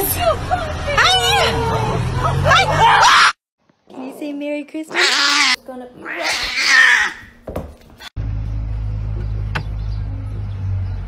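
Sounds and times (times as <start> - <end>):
cat yowling: 4.9 - 7.4.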